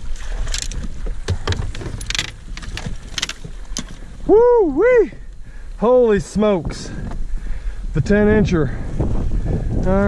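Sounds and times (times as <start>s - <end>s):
low wind rumble on microphone: 0.0s - 10.0s.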